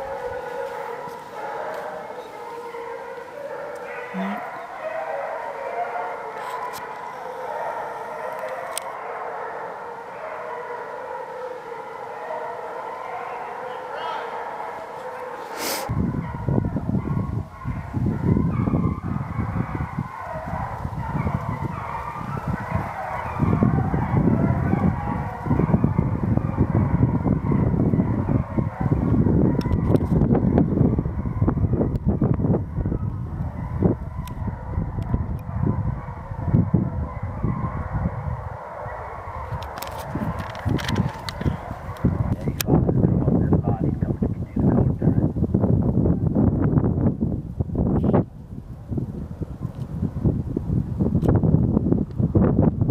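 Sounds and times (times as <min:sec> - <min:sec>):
hounds baying in chorus: 0:00.0 - 0:43.2
click: 0:08.4 - 0:08.9
microphone handling rumble: 0:15.9 - 0:38.4, 0:39.4 - 0:52.9.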